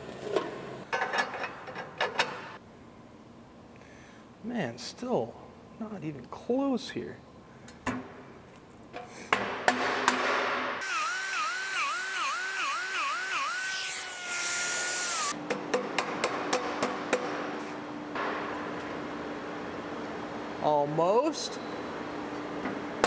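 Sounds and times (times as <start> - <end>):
die grinder grinding metal: 10.8 - 15.4.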